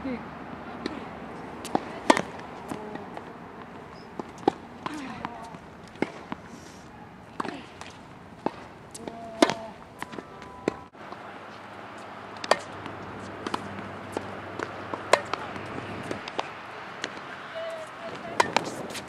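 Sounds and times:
tennis ball struck by racket: 1.6 - 6.4, 7.4 - 11.2, 12.4 - 19.0.

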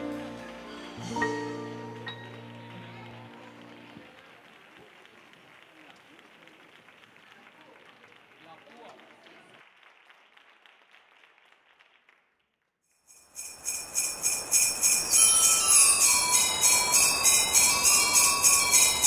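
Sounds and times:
live band final chord: 0.0 - 4.0
crowd voices: 0.0 - 6.1
audience applause: 0.0 - 12.3, 15.1 - 19.0.

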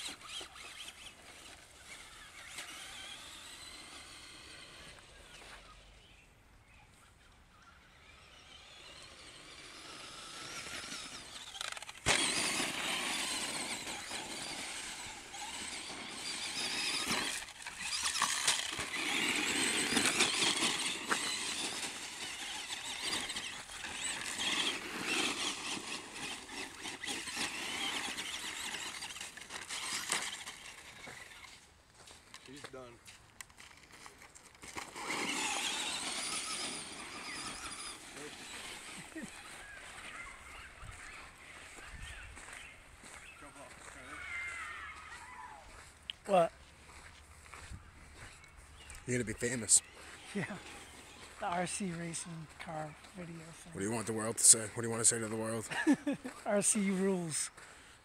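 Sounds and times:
electric motor whining: 0.0 - 6.2, 7.5 - 31.7, 34.5 - 45.8
tyres on dirt and gravel: 0.0 - 58.0.

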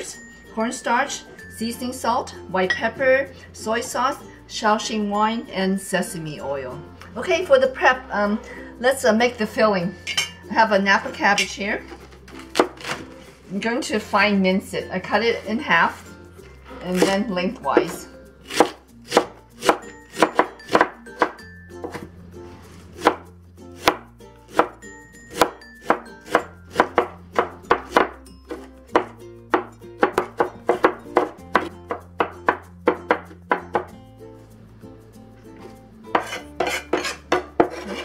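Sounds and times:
cleaver chopping on wooden board: 18.5 - 22.0, 23.8 - 33.9.

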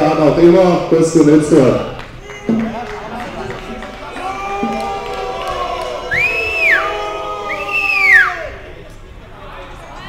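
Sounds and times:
gliding whistles: 6.1 - 6.9, 7.5 - 8.4.

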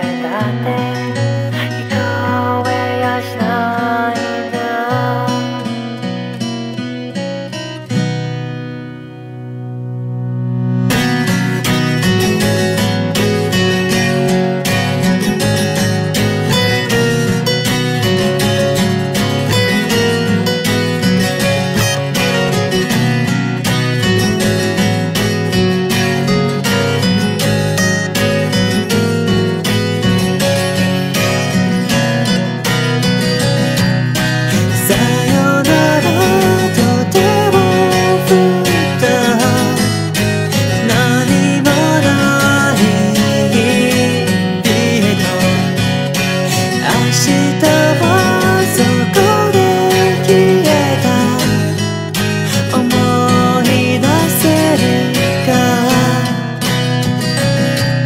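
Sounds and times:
acoustic guitar playing: 0.0 - 58.0.

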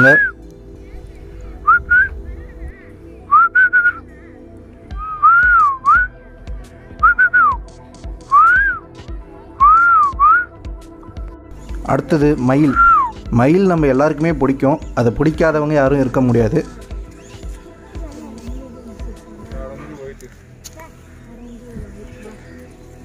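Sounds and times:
whistled tune: 0.0 - 0.4, 1.6 - 2.2, 3.3 - 4.1, 4.9 - 6.2, 7.0 - 7.6, 8.3 - 8.9, 9.6 - 10.6, 12.6 - 13.2
soft background music chords: 0.0 - 23.0.

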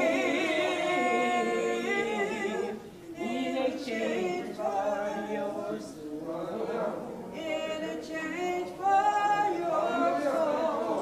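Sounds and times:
person singing unaccompanied: 0.0 - 11.0.

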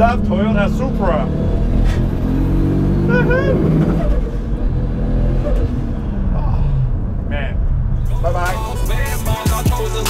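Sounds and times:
car engine from inside cabin: 0.0 - 9.1.

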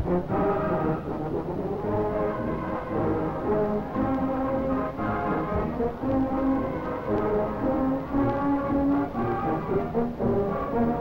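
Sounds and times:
brass melody in long notes: 0.0 - 11.0
marching band playing: 0.0 - 11.0.

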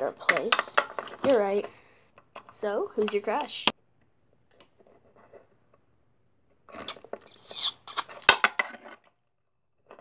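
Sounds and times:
plastic toys handled: 0.2 - 3.2, 6.6 - 10.0
squeaky mouth kissing noise: 6.9 - 8.2.

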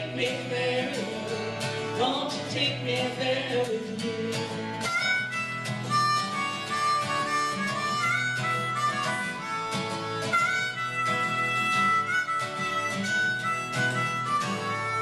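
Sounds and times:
strummed acoustic guitar: 0.0 - 15.0
harmonica playing held notes: 4.8 - 15.0.

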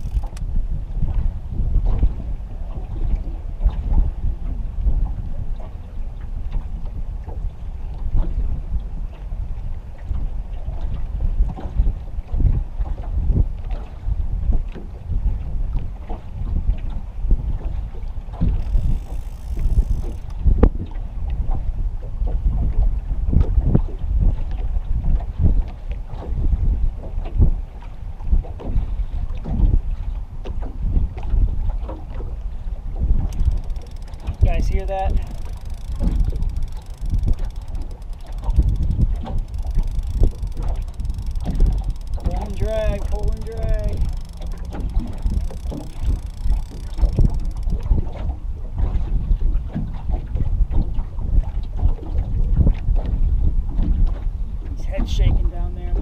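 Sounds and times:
water slapping boat hull: 0.0 - 56.0
wind buffeting microphone: 0.0 - 56.0.

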